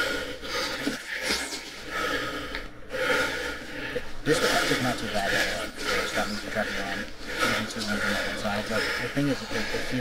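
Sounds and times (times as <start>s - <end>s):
person breathing hard: 0.0s - 10.0s.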